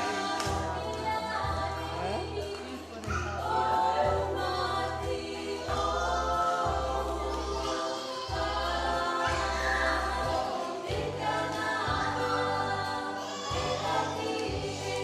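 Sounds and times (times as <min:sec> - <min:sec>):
choir singing: 0:00.0 - 0:15.0.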